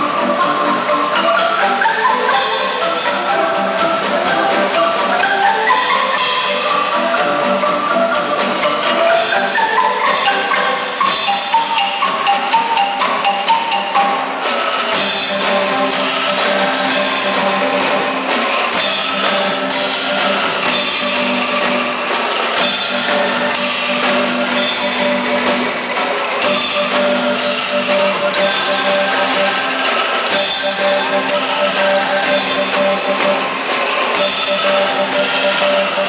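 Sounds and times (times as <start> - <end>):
bamboo xylophones: 0.0 - 36.0
drum kit: 0.0 - 36.0.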